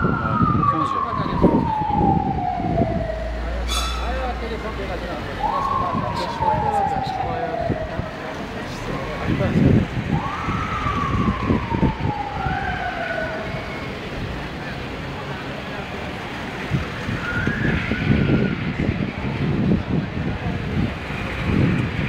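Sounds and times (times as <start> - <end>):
siren wail: 0.0 - 14.6, 16.8 - 19.8
crowd voices: 0.0 - 22.0
vehicles passing: 0.0 - 22.0
short siren chirps: 0.8 - 4.6.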